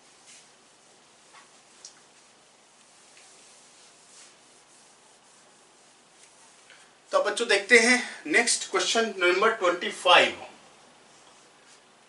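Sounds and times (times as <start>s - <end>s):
cloth wiping whiteboard: 0.0s - 10.4s, 11.0s - 12.0s.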